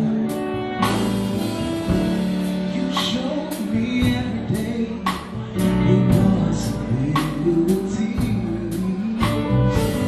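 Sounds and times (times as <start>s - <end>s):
live band playing slow song: 0.0s - 10.0s.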